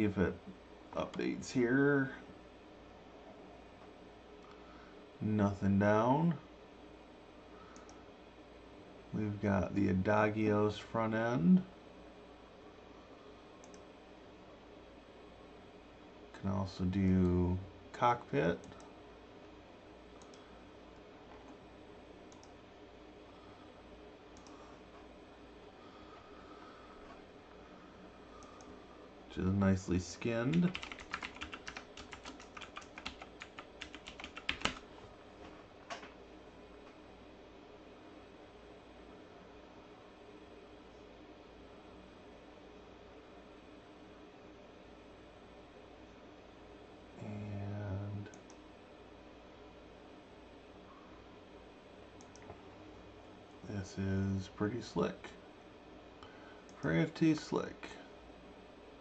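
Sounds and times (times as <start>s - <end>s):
computer mouse clicks: 13.6s - 13.8s, 20.2s - 20.4s, 24.4s - 24.6s, 52.2s - 52.6s
room hiss: 36.4s - 59.0s.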